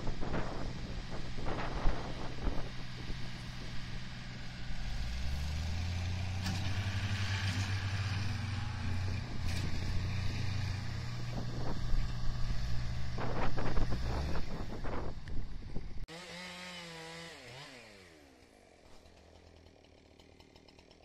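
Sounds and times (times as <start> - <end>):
tractor diesel engine droning: 0.0 - 16.1.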